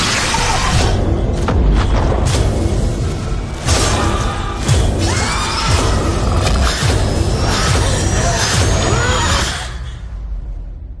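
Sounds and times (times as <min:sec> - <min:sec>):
trailer music: 0:00.0 - 0:11.0.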